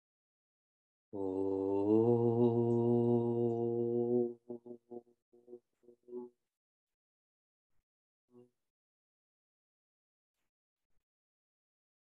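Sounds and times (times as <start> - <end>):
man chanting a low held note: 1.2 - 4.8.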